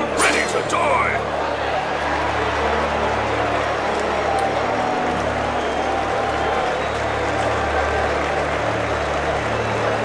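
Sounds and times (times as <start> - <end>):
arena crowd cheering and shouting: 0.0 - 10.0.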